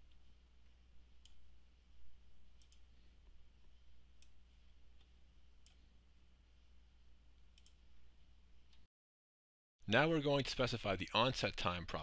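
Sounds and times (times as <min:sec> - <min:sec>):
low steady hum: 0:00.0 - 0:08.9
computer mouse clicks: 0:02.6 - 0:02.9, 0:07.5 - 0:07.8.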